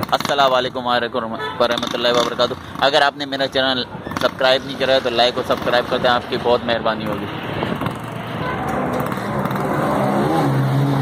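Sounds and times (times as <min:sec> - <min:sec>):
motor vehicle passing: 0:07.3 - 0:11.0.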